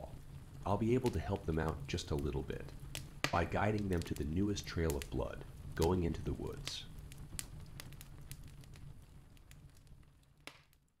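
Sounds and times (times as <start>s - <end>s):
fireplace fire crackling: 0.0s - 11.0s
sharp pops from fire: 0.0s - 11.0s.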